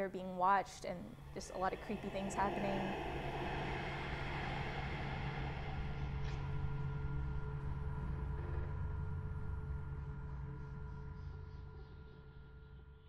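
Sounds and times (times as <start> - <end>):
low steady drone: 0.0 - 13.0
held higher tones: 1.0 - 7.3.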